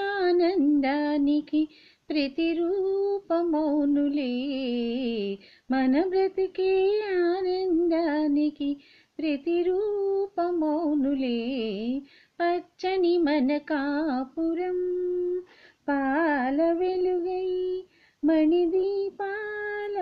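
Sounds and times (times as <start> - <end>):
woman singing unaccompanied: 0.0 - 20.0.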